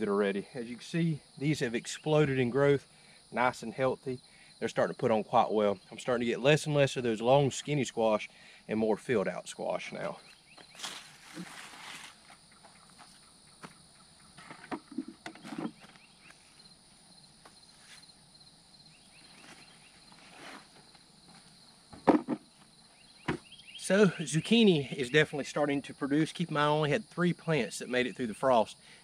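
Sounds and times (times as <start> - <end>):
rustling of squash leaves: 10.7 - 12.4.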